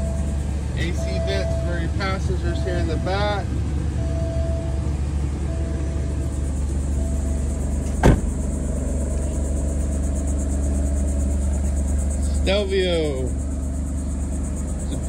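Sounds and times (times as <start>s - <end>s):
car engine idling: 0.0s - 15.0s
sharp thump: 7.8s - 8.4s.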